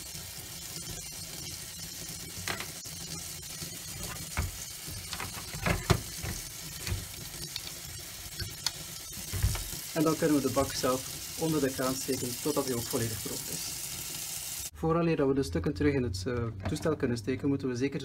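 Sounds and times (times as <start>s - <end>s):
plastic parts clicking and knocking: 4.3s - 7.1s
tap running into steel sink: 4.3s - 7.1s.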